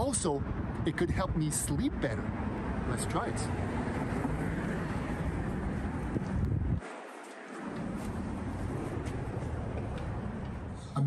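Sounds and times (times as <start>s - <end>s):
wind buffeting microphone: 0.0s - 10.8s
street noise: 0.0s - 11.0s.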